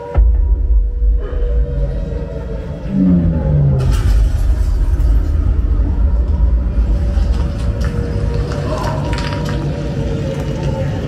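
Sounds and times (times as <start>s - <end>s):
deep rumble of explosions: 0.2s - 11.0s.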